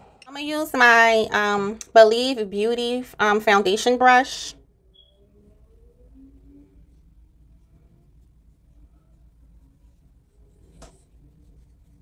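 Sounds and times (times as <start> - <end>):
faint brief tones: 4.9 - 6.6.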